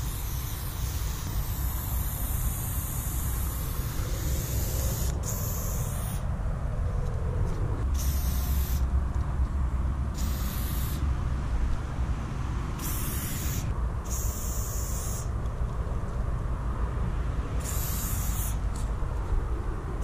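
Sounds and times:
spray paint can hissing: 0.0s - 6.2s, 7.9s - 8.9s, 10.1s - 11.0s, 12.8s - 15.3s, 17.6s - 18.8s
steady low rumble: 0.0s - 20.0s.

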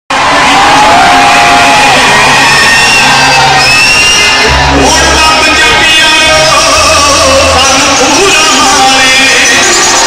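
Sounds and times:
crowd noise: 0.1s - 10.0s
loud live music over pa: 0.1s - 10.0s.

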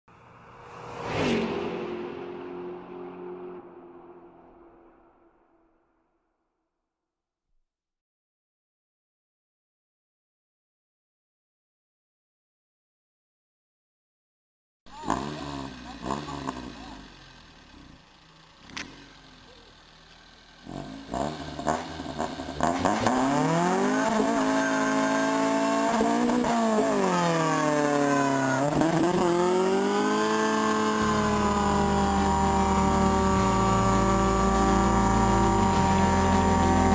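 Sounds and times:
whoosh sound effect: 0.1s - 5.4s
car engine revving: 0.1s - 5.9s, 14.9s - 36.9s
low hum: 0.1s - 6.3s.

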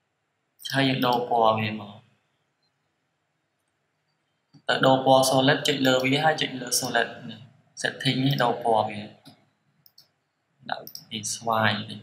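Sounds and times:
person narrating: 0.6s - 2.0s, 4.7s - 9.3s, 10.7s - 12.0s
computer mouse clicks: 9.2s - 11.1s.

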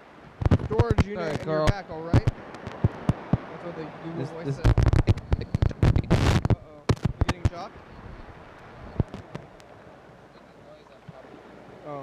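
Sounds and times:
static hiss: 0.0s - 7.7s, 8.8s - 9.7s
loud clicks and pops: 0.4s - 3.4s, 4.6s - 7.6s, 9.0s - 9.7s.

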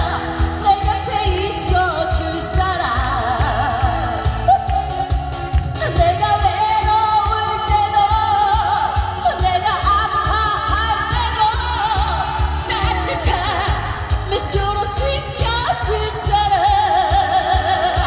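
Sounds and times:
backing track with steady beat: 0.0s - 18.0s
woman singing into microphone: 0.0s - 18.0s.

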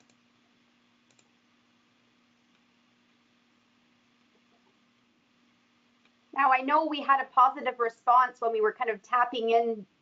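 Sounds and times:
faint hum and hiss: 0.0s - 10.0s
faint clicks: 1.0s - 1.3s.

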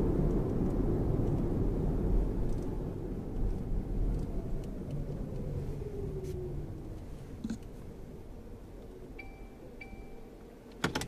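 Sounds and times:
low steady car cabin hum: 0.0s - 11.0s
short electronic beeps: 9.2s - 10.3s.

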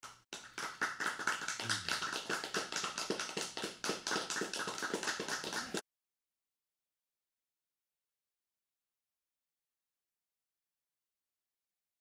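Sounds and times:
applause: 0.0s - 5.8s.

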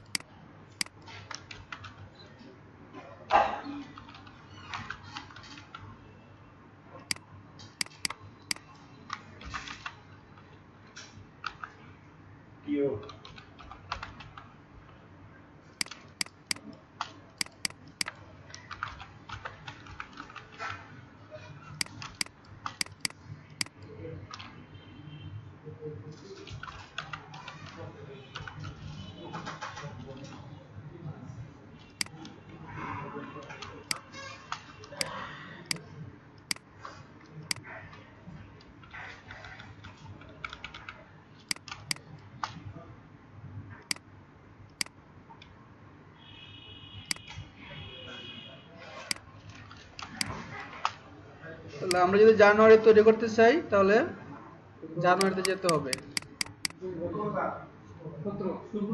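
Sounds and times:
keyboard keys tapping: 0.0s - 1.0s, 7.8s - 8.6s, 15.8s - 16.8s, 17.4s - 20.5s, 21.8s - 23.8s, 55.2s - 56.8s
mouse clicking: 0.0s - 1.1s, 7.1s - 8.7s, 15.8s - 16.8s, 17.4s - 19.0s, 21.8s - 23.9s, 36.4s - 36.6s, 41.5s - 42.1s, 55.2s - 56.8s
keyboard typing: 0.0s - 2.1s, 7.1s - 10.0s, 13.0s - 14.5s, 15.8s - 20.8s, 21.7s - 24.5s, 36.4s - 36.7s, 38.6s - 42.6s, 55.2s - 56.8s.

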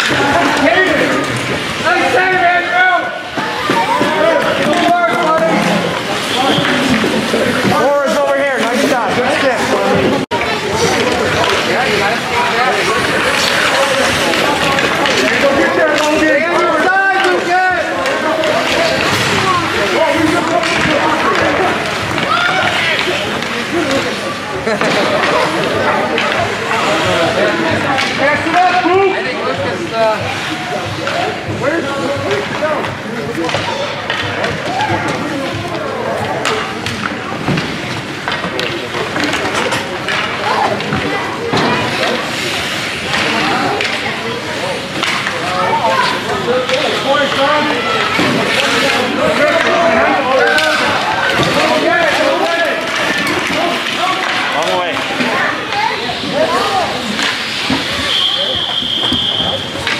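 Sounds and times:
spectators shouting and chattering: 0.0s - 59.9s
stick and puck clacks on ice: 6.5s - 29.0s, 32.1s - 44.2s, 44.8s - 59.9s.

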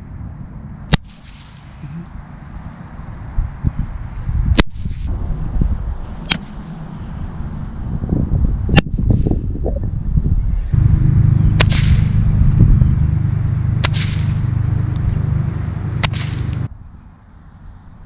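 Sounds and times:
low rumble: 0.0s - 17.0s
whip cracking: 0.9s - 1.9s, 4.5s - 5.1s, 6.2s - 6.6s, 8.7s - 9.3s, 11.5s - 12.7s, 13.8s - 15.1s, 16.0s - 16.7s.

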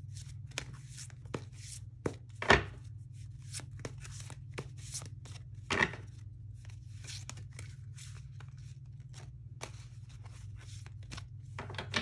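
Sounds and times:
cards clicking and rustling: 3.4s - 12.0s.

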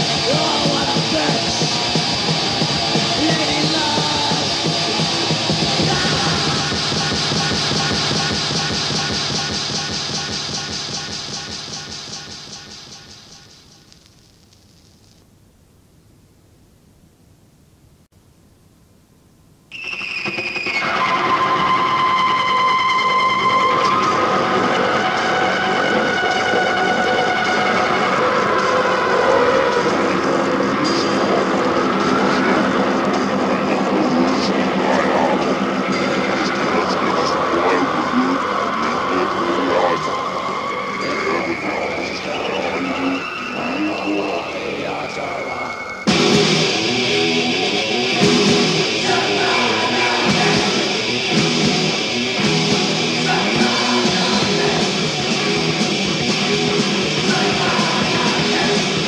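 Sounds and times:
electric guitar feedback drone: 0.0s - 12.3s, 19.7s - 59.0s
tape hiss: 0.0s - 59.0s.

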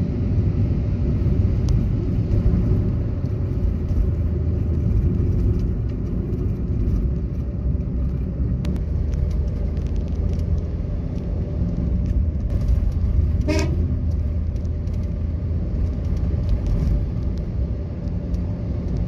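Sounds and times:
engine and road noise: 0.0s - 19.0s
vehicle horn toot: 13.4s - 13.8s.

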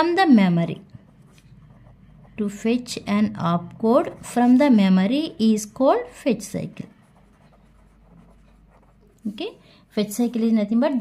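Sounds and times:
pen writing on paper: 1.1s - 2.6s, 6.7s - 9.2s.

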